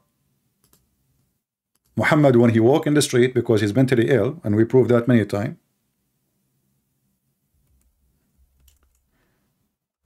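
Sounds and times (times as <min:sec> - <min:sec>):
computer mouse clicking: 0:00.6 - 0:00.9, 0:07.6 - 0:08.0, 0:08.6 - 0:09.1.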